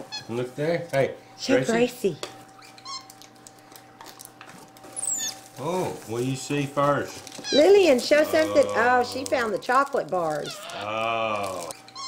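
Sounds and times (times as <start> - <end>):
monkey squeaking: 0.0 - 0.4, 2.6 - 3.2, 5.0 - 5.4, 7.4 - 9.6, 10.4 - 10.8.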